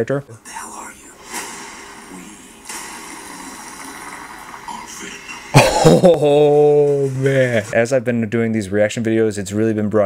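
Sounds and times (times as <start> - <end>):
film trailer sound effects: 0.0 - 7.2.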